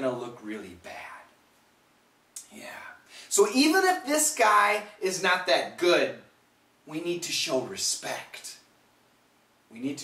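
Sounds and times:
man speaking: 0.0s - 1.4s, 2.4s - 8.7s, 9.7s - 10.0s.

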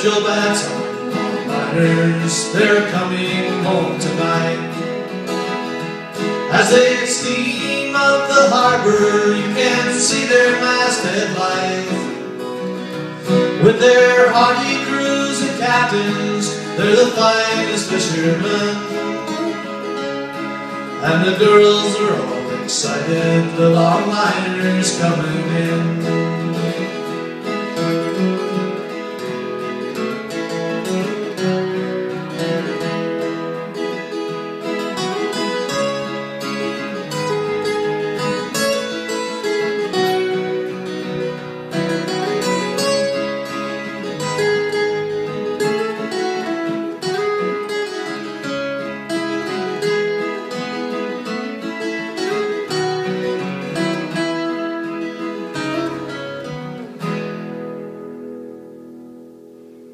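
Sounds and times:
two acoustic guitars playing: 0.0s - 59.9s.

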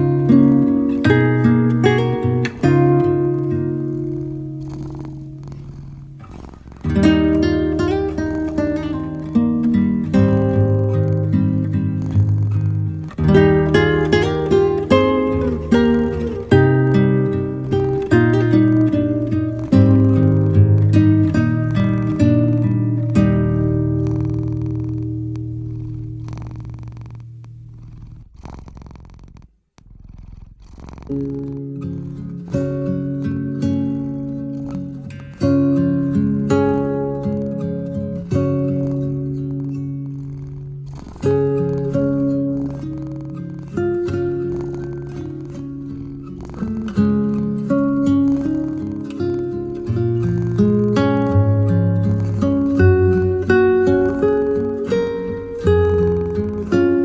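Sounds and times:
solo acoustic guitar: 0.0s - 28.3s, 30.6s - 57.0s
cat purring: 0.0s - 57.0s.

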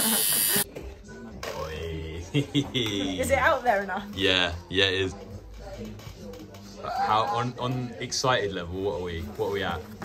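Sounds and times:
electric buzz: 0.0s - 0.6s.

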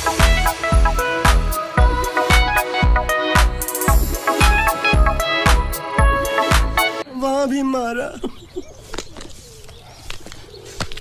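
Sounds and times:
pigeon cooing: 8.2s - 11.0s.

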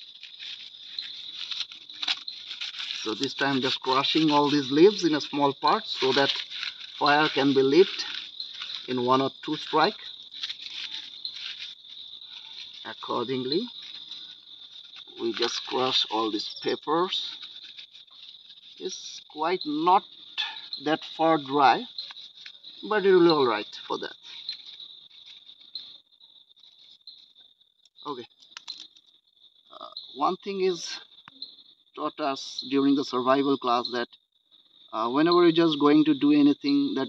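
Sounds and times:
dry leaves crushed by hands: 0.0s - 18.9s
night insects chirring: 0.0s - 37.0s.

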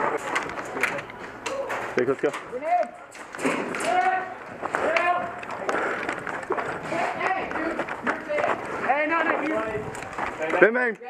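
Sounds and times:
people shouting and calling: 3.6s - 10.0s.

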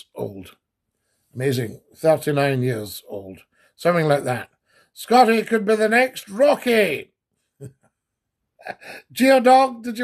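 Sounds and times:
man speaking: 0.0s - 0.7s, 1.3s - 7.2s, 8.6s - 10.0s.

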